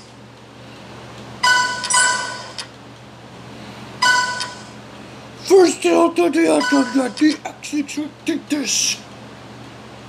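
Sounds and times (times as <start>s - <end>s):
bright ringing dings: 1.4s - 2.6s, 4.0s - 4.7s, 6.6s - 7.3s.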